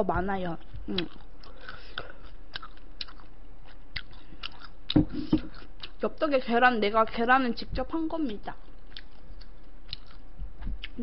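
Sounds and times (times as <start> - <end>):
close chewing with wet clicks: 0.6 - 6.0, 8.3 - 11.0.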